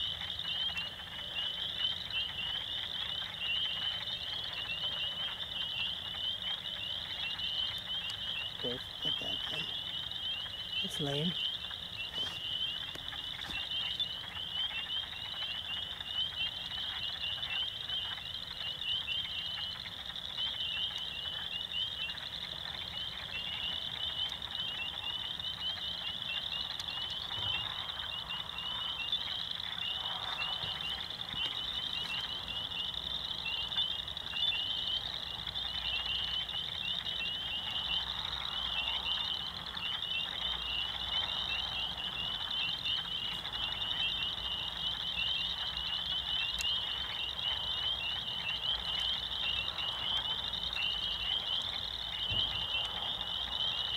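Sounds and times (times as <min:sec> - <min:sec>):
chorus of frogs calling: 0:00.0 - 0:53.9.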